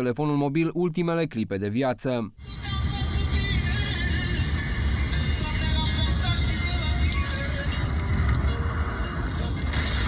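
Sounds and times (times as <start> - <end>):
music playing: 2.4 - 10.0.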